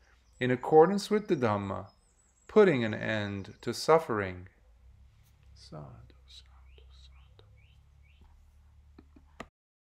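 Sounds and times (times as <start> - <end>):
steady low hum: 3.2 - 9.4.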